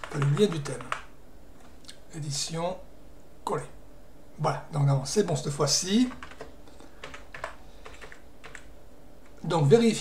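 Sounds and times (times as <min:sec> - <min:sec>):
keyboard keystrokes: 0:00.0 - 0:01.1, 0:06.1 - 0:08.7.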